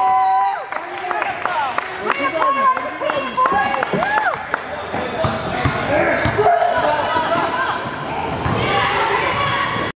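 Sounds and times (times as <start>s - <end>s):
shouts and chatter: 0.0s - 4.5s, 5.9s - 9.9s.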